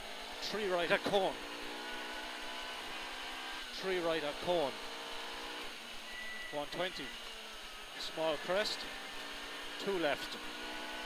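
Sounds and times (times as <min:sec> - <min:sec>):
car engine at steady revs: 0:00.0 - 0:11.0
road noise: 0:00.0 - 0:11.0.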